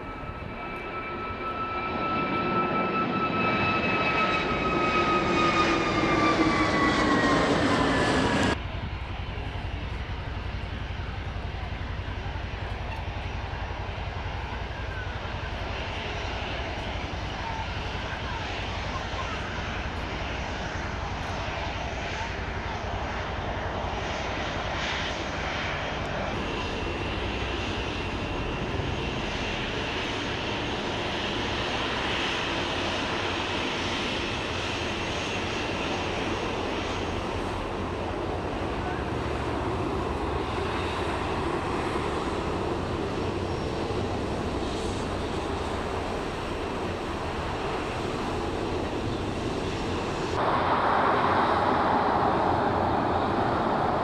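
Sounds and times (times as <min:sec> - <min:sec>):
airliner engines passing: 0:00.0 - 0:54.0
low rumble of aircraft engines: 0:00.0 - 0:54.0.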